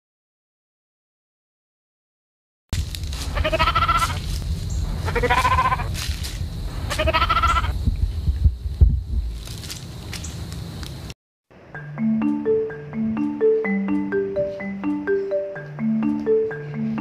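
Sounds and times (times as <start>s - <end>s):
steady low rumble: 2.8s - 11.1s
sheep bleating: 3.2s - 4.2s, 5.0s - 5.9s, 6.9s - 7.8s.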